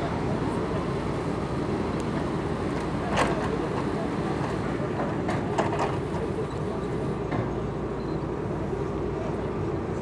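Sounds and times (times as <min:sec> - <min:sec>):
ship engines rumbling: 0:00.0 - 0:10.0.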